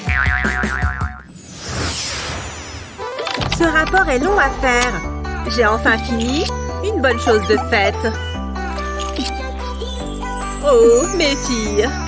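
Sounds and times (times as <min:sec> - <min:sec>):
background music with a beat: 0:00.0 - 0:01.3
cartoon boing effect: 0:00.0 - 0:01.3
sweeping transition sound: 0:01.3 - 0:05.5.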